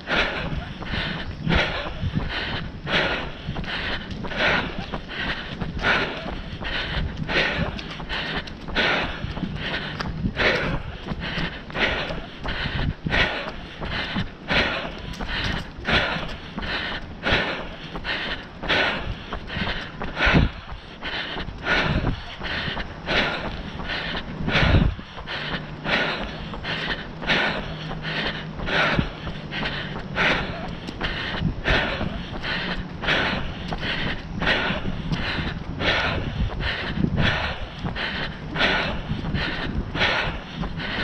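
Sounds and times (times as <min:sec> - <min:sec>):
hard rhythmic breathing: 0:00.0 - 0:41.0
footfalls on pavement: 0:00.6 - 0:41.0.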